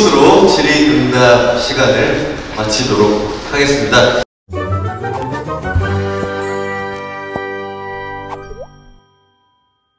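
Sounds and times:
cartoon plop sound effects: 8.3 - 8.9.

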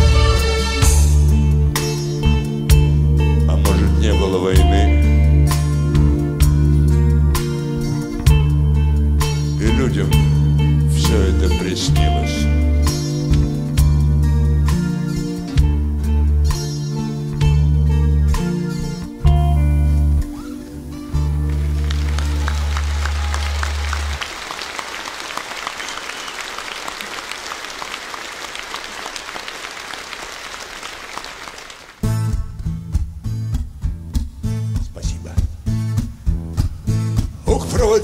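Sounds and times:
strummed acoustic guitar with bass: 0.0 - 22.8, 32.0 - 38.0
audience applauding: 20.3 - 32.0.

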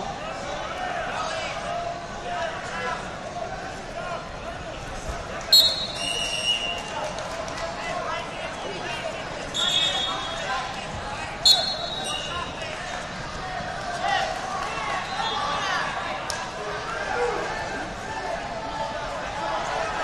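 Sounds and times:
crowd chatter in a large hall: 0.0 - 20.0
referee whistle blasts: 5.5 - 6.8, 9.5 - 10.5, 11.4 - 12.3.

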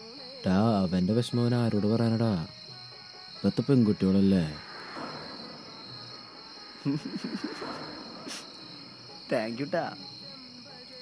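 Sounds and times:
crickets chirring: 0.0 - 11.0
man's voice: 0.4 - 2.6.

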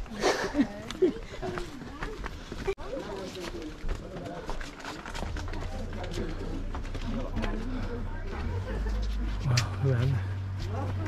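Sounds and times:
footsteps on a paved path: 0.0 - 11.0
indistinct chatter of voices: 0.0 - 11.0
steady low rumble: 5.2 - 11.0.

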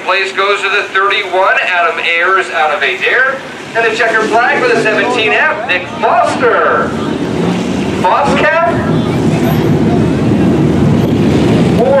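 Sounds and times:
race car engines rumbling: 0.0 - 12.0
person speaking: 3.7 - 6.5.

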